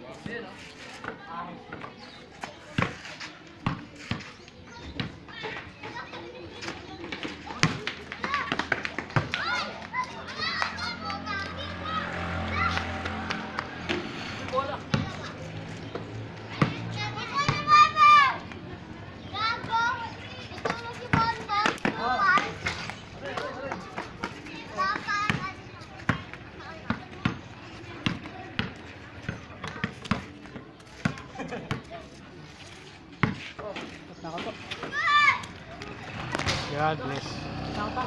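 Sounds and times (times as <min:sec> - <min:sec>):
basketball bouncing on concrete: 0:02.7 - 0:03.0, 0:03.6 - 0:05.3, 0:07.0 - 0:09.6, 0:13.0 - 0:17.7, 0:20.6 - 0:32.0, 0:33.2 - 0:34.8
players shouting: 0:07.7 - 0:15.5.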